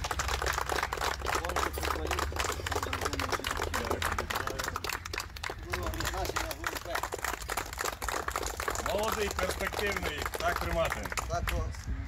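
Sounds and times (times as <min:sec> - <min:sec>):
group clapping: 0:00.0 - 0:11.8
voices: 0:00.7 - 0:12.0.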